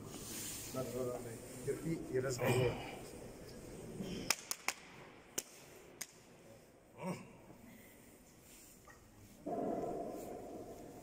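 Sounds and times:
hand slaps on back: 4.2 - 6.2.

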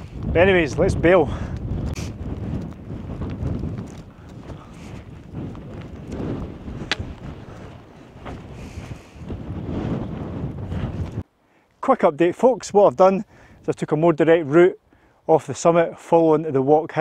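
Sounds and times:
wind buffeting microphone: 0.0 - 11.3.

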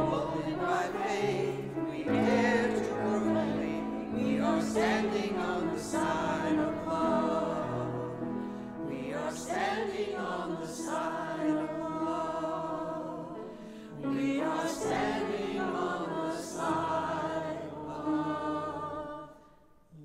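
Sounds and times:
grand piano accompaniment: 0.0 - 19.4
small choir singing: 0.0 - 19.7.

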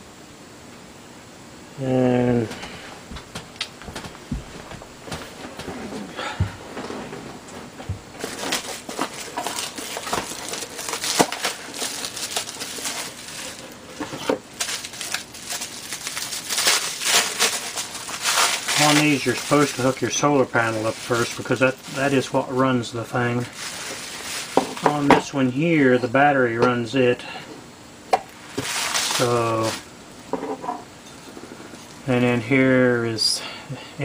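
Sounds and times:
soft knocks: 3.1 - 5.3
bubble wrap crinkling: 7.4 - 26.0, 28.3 - 29.9.

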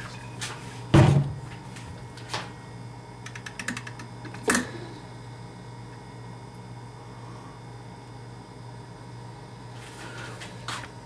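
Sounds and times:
low electrical hum: 0.0 - 11.0
heavy thump: 1.0 - 1.4.

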